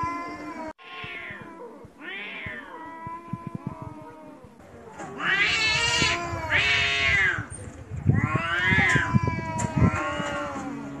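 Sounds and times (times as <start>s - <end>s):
cats caterwauling: 0.0s - 11.0s.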